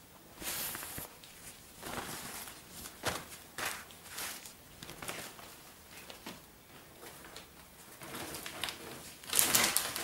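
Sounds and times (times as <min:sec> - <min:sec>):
rustling of plastic and leather: 0:00.4 - 0:10.0.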